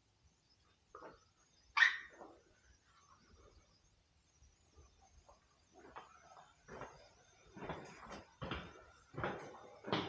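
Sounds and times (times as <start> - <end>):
dog barking: 1.8 - 2.2.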